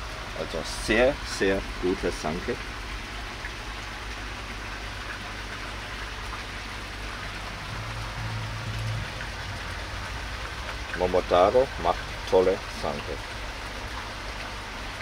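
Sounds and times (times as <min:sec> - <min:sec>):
running splashing water: 0:00.0 - 0:15.0
low hum: 0:06.8 - 0:12.8.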